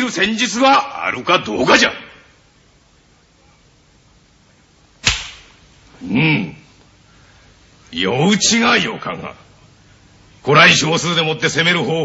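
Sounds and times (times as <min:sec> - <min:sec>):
sharp crack: 0:05.0 - 0:05.7.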